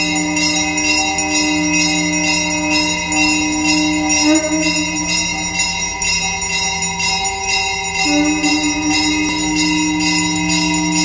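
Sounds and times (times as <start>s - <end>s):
hand bell ringing rhythmically: 0.0s - 11.0s
held musical tones: 0.0s - 11.0s.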